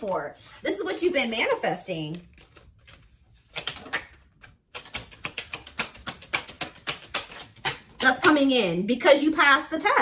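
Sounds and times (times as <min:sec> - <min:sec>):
cards being shuffled: 0:01.2 - 0:08.1.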